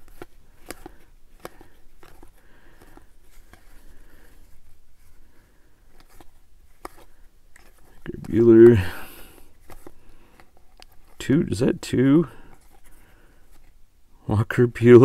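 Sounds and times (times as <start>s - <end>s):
trading cards flicking and clicking: 0.0s - 4.5s, 5.8s - 11.2s.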